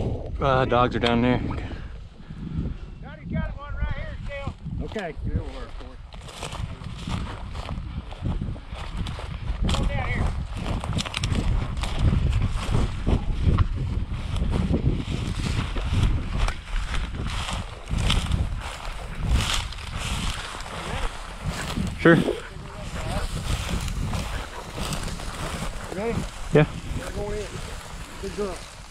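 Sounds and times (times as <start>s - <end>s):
wind rumble on microphone: 0.0s - 28.9s
footsteps through dry grass: 3.9s - 28.9s
grass stems rustling: 4.8s - 7.8s, 14.3s - 28.9s.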